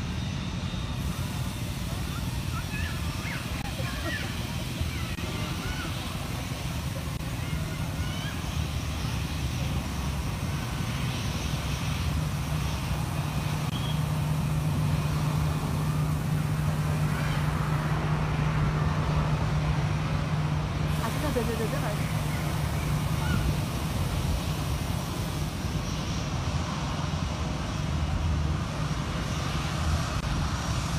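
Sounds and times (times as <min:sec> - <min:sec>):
jet engines droning: 0:00.0 - 0:30.9.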